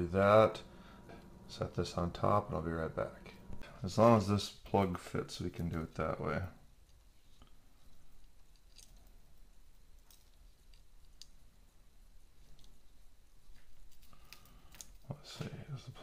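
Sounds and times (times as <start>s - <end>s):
small electronic parts clicking: 7.9s - 11.5s, 13.6s - 15.1s.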